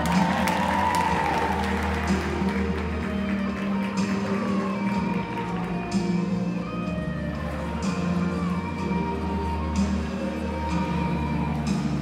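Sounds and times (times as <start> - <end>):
music over arena sound system: 0.0 - 12.0.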